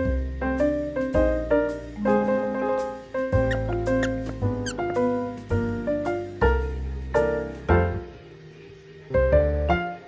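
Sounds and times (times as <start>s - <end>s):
piano music: 0.0s - 10.0s
squeaker toy squeaks: 3.4s - 5.0s.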